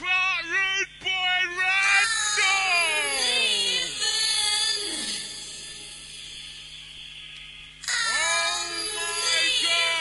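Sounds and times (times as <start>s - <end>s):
loud voice: 0.0s - 4.0s, 7.9s - 10.0s
tape hiss and hum: 0.0s - 10.0s.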